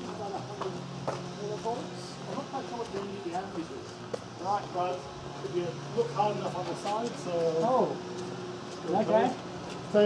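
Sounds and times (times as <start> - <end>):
electrical machinery humming: 0.0 - 10.0
footsteps on concrete: 0.0 - 10.0.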